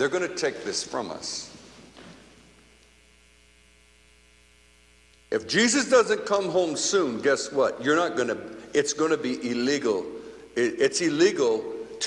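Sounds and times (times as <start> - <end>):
room echo of spoken word: 0.0 - 2.8, 5.2 - 12.0
electrical mains hum: 0.0 - 12.0.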